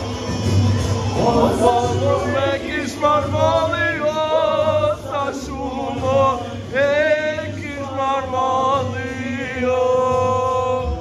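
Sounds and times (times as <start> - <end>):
men singing unaccompanied: 1.1 - 11.0.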